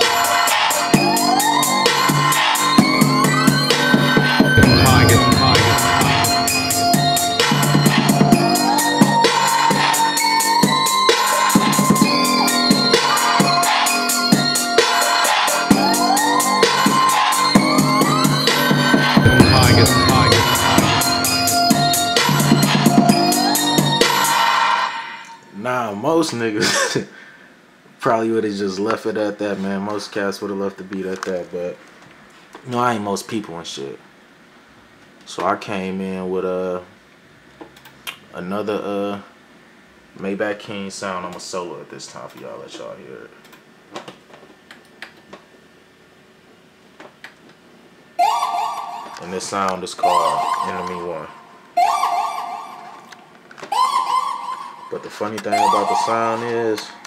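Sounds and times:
trap beat with hi-hats and kicks: 0.0 - 24.6
organ and whistle melody: 0.0 - 25.4, 48.2 - 57.0
organ chords: 2.8 - 10.2, 17.6 - 24.2
rising pitch glide: 4.6 - 8.4, 19.2 - 22.5.

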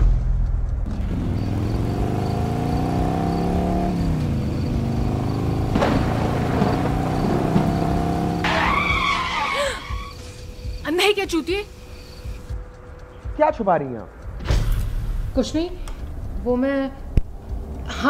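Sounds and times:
car engine running: 0.7 - 13.0
tyre squeal: 8.3 - 10.5.

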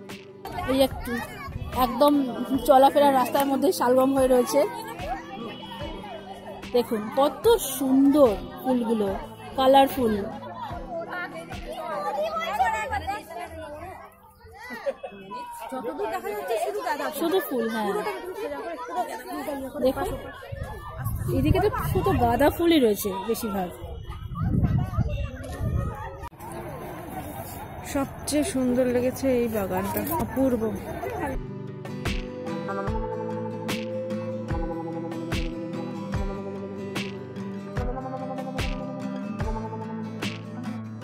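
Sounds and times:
high-pitched voices chattering: 0.0 - 31.4
people talking over one another: 0.0 - 41.0.

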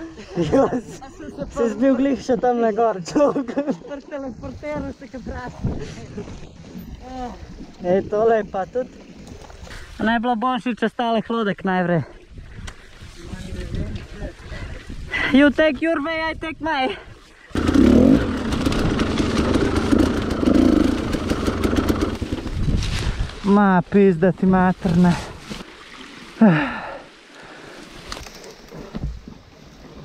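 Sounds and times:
dirt bike engine rumbling: 17.5 - 23.3.

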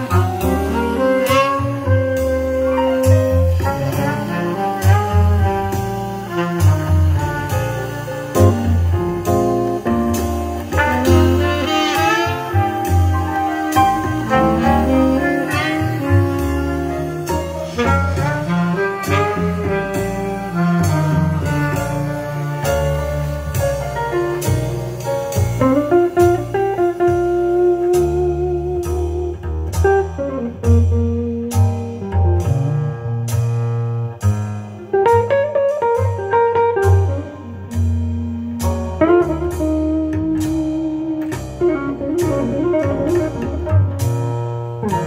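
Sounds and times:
jazz saxophone over double bass: 0.0 - 45.0.

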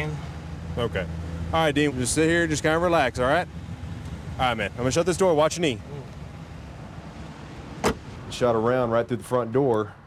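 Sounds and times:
car engine idling hum: 0.0 - 10.0
car door slamming shut: 7.8 - 8.1.

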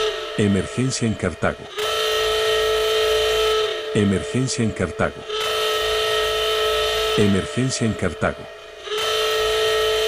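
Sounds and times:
electronic alarm tone: 0.0 - 10.0.

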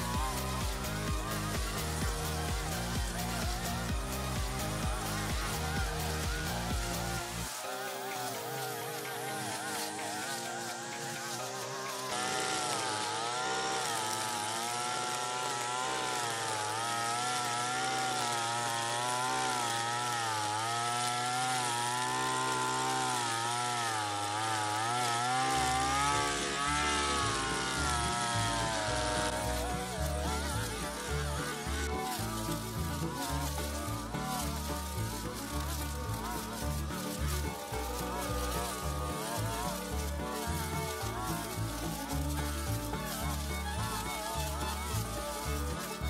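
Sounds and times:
brush cutter engine whining: 0.0 - 46.0.

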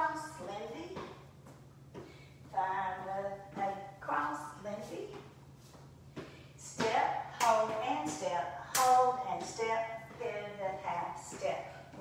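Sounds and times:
woman talking: 0.0 - 1.2, 2.5 - 5.3, 6.6 - 12.0.

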